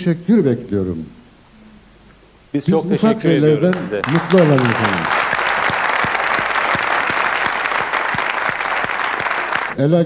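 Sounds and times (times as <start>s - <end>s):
audience applauding: 3.6s - 9.8s.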